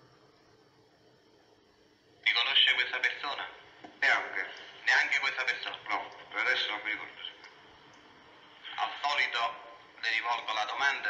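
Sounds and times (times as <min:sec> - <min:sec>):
person speaking over telephone: 0:02.2 - 0:07.4, 0:08.6 - 0:11.0.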